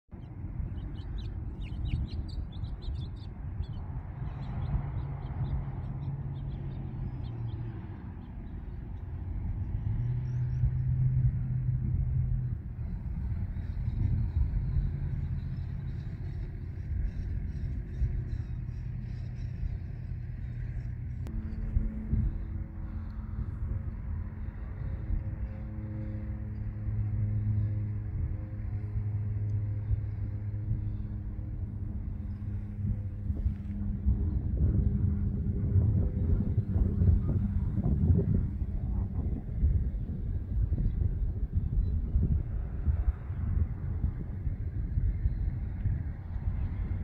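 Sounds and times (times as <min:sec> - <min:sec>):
distant vehicle engines rumbling: 0:00.1 - 0:47.0
higher steady hum: 0:00.1 - 0:47.0
low hum: 0:00.1 - 0:47.0
small birds chirping: 0:00.2 - 0:08.9.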